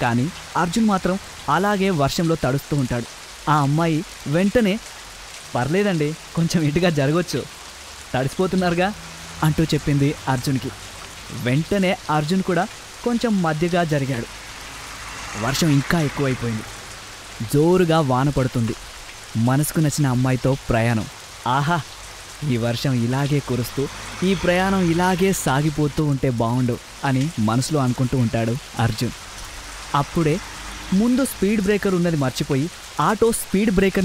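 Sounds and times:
person narrating: 0.0 - 4.9, 5.6 - 7.5, 8.2 - 14.3, 15.4 - 16.7, 17.4 - 18.8, 19.4 - 29.2, 30.0 - 34.0
steady hiss like rain: 0.0 - 34.0.

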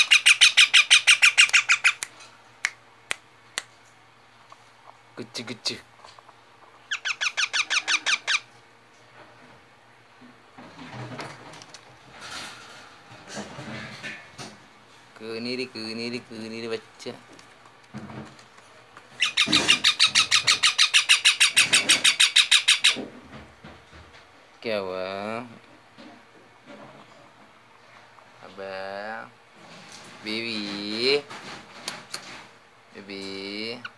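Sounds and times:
parakeet high-pitched calls: 0.0 - 2.0, 6.8 - 8.5, 19.2 - 23.0.

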